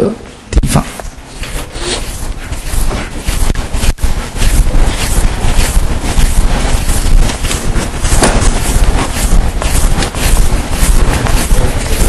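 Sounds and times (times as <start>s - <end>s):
rustling and scraping noise: 0.6s - 12.0s.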